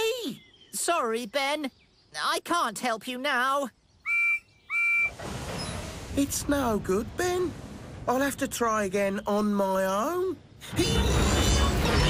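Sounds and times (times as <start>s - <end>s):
low rumbling hiss: 3.8s - 12.0s
steam locomotive whistle toots: 4.1s - 5.2s.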